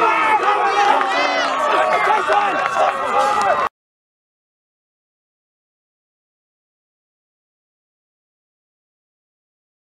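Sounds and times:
boys shouting: 0.0s - 3.7s
running footsteps: 0.0s - 3.7s.

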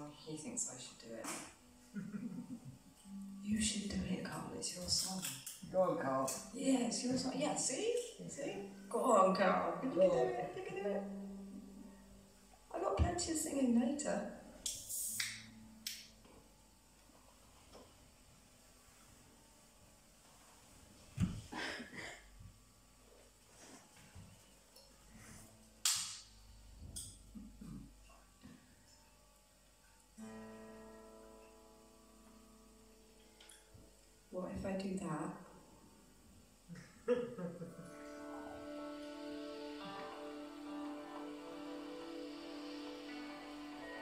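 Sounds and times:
guitar chord ringing: 2.9s - 5.1s, 5.8s - 14.7s, 15.3s - 16.9s, 28.8s - 33.8s, 37.8s - 44.0s.

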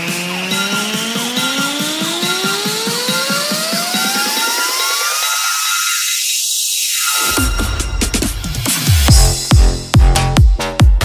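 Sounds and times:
dance music beat pulse: 0.0s - 11.0s.

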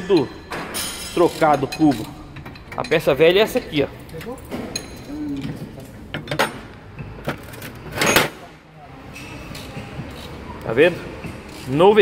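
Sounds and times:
metal parts knocking on steel: 0.1s - 7.4s.

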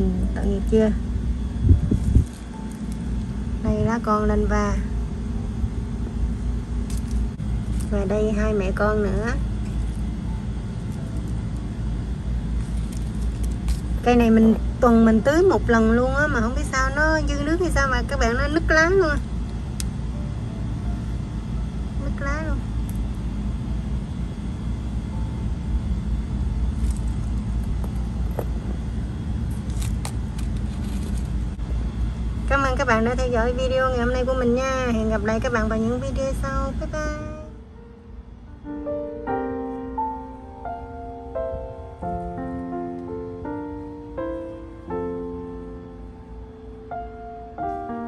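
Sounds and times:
constant hum: 0.0s - 48.0s
low background rumble: 0.0s - 48.0s.

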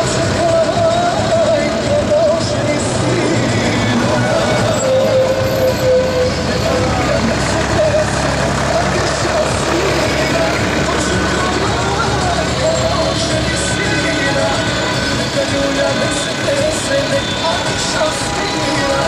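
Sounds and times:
indistinct voices: 0.0s - 19.0s
music: 0.0s - 19.0s
traffic engine rumble: 0.0s - 19.0s.

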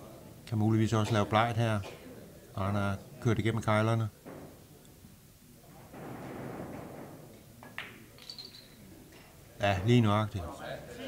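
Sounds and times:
billiard balls rolling on cloth: 5.6s - 9.4s.

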